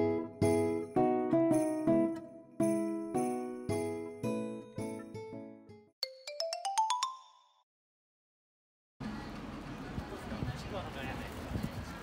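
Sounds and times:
bell-like jingle rising in pitch: 6.0s - 7.6s.

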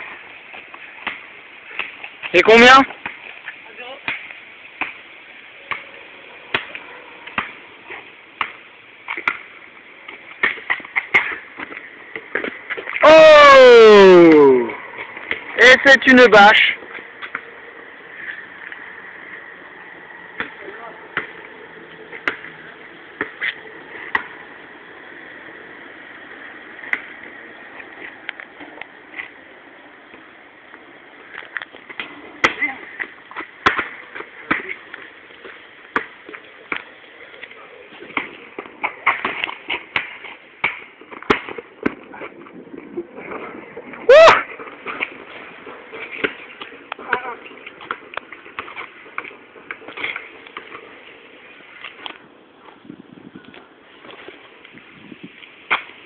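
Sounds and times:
steady background hiss: 0.0s - 56.0s.

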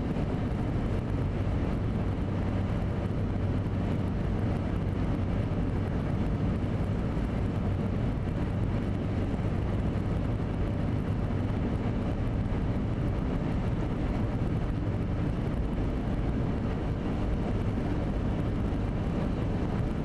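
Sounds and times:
low engine hum: 0.0s - 20.0s.

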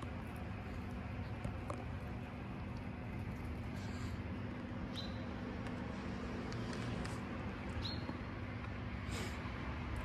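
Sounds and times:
distant road traffic rumble: 0.0s - 10.0s.

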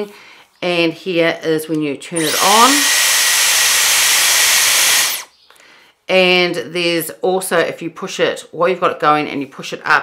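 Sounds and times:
hair styler air rush and whine: 2.2s - 5.3s.

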